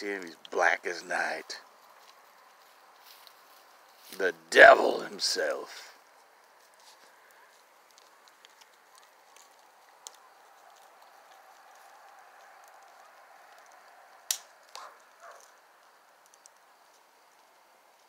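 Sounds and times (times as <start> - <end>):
bonfire crackling: 0.0 - 18.0
fire popping: 0.1 - 18.0.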